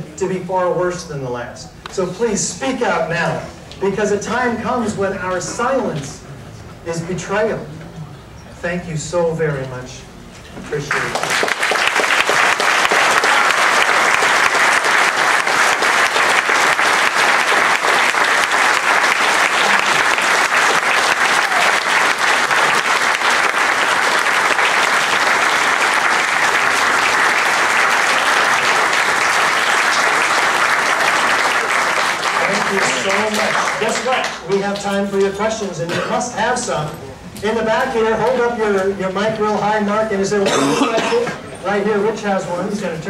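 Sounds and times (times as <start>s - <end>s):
large audience applauding: 10.9s - 34.8s.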